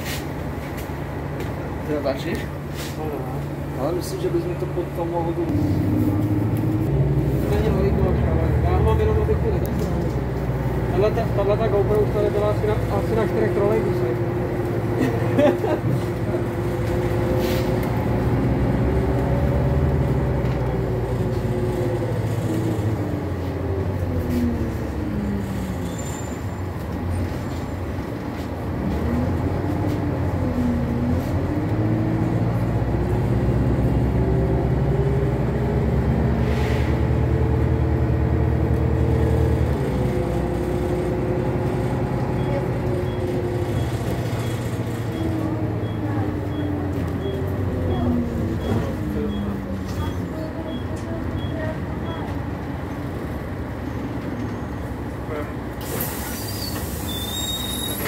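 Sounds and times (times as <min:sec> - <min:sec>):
bus diesel engine whine: 0:00.0 - 0:58.0.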